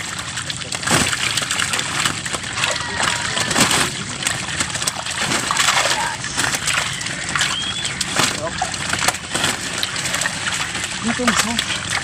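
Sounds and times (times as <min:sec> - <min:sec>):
fish splashing in shallow water: 0:00.0 - 0:12.0.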